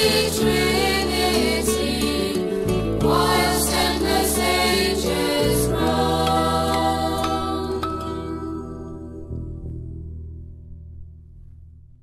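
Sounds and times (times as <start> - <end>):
choir singing: 0.0 - 9.3
instrumental backing: 0.0 - 11.7.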